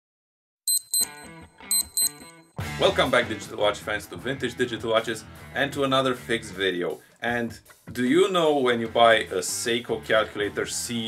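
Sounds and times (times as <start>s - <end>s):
high-pitched electronic beeps: 0.7s - 2.4s.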